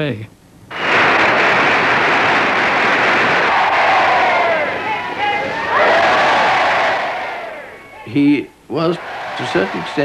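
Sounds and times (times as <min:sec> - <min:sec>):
crowd cheering: 0:00.7 - 0:08.2, 0:08.8 - 0:10.0.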